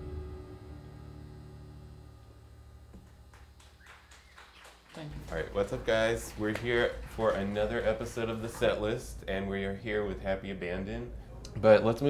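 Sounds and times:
amplifier hum: 0.0 - 12.0.

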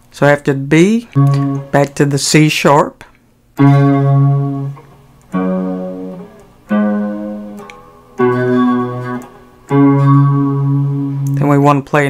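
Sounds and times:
electric guitar single plucked notes: 1.1 - 2.0, 3.6 - 11.4.

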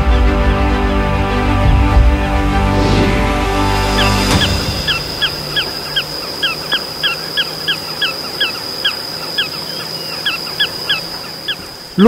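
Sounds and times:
birds calling sharp notes: 0.0 - 12.0
high-pitched insect drone: 3.6 - 12.0.

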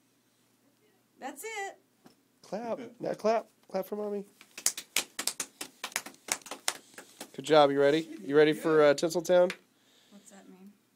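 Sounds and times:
child clapping hands: 4.4 - 7.4.

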